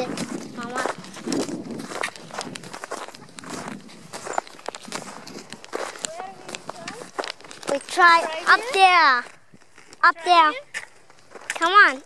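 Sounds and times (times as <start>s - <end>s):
footsteps crunching on snow: 0.0s - 12.0s.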